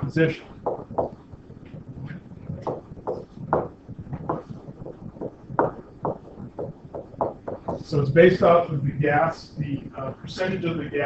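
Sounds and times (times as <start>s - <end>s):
stylus tapping on tablet: 0.6s - 1.9s, 2.5s - 7.9s.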